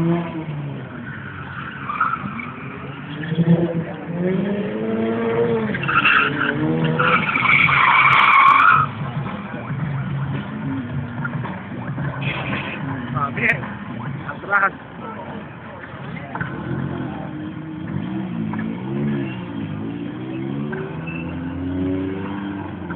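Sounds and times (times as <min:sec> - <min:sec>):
car engine revving: 0:00.0 - 0:22.9
tyre squeal: 0:05.7 - 0:08.9, 0:20.9 - 0:21.6.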